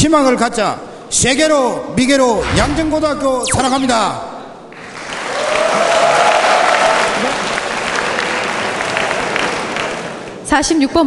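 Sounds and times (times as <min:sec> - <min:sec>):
voices cheering: 0:04.8 - 0:10.1
audience applauding: 0:04.8 - 0:10.4.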